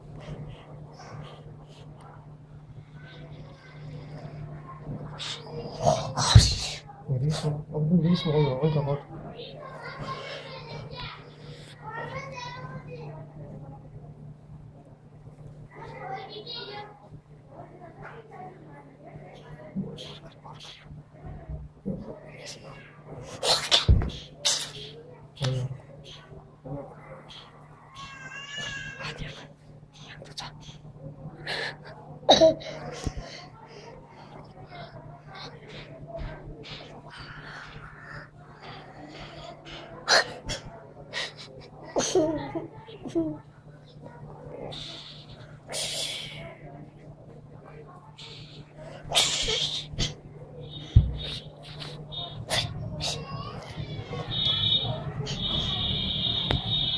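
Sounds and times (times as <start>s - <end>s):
faint hum: 0.0s - 56.9s.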